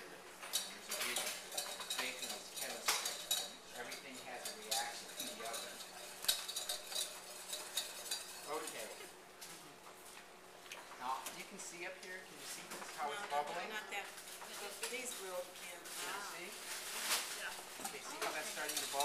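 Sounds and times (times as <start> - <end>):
metal utensils clinking on saucepans: 0.4 - 9.1, 17.8 - 19.0.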